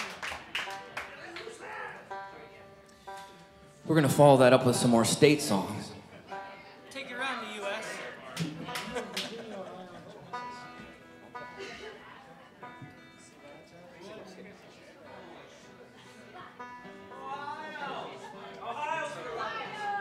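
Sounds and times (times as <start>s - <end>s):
quiet talking: 0.0s - 3.9s, 5.9s - 20.0s.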